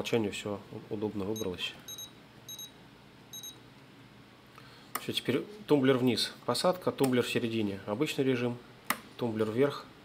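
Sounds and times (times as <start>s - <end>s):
short high-pitched key beeps: 1.4s - 3.6s.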